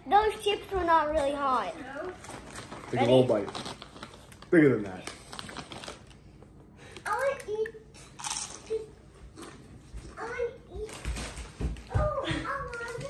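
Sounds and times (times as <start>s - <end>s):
chips crunching and chewing: 7.2s - 8.8s.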